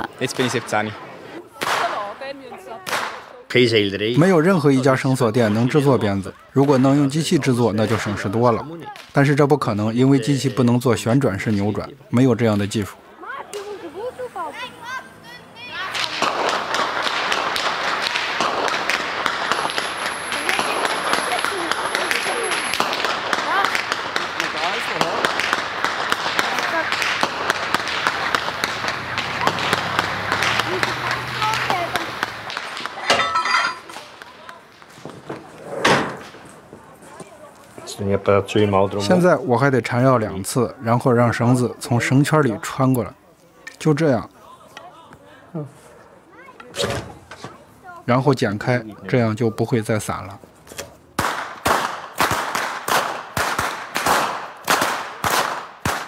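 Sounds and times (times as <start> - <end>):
crowd voices: 0.0 - 51.2
whips cracking: 15.9 - 33.1, 51.2 - 56.0.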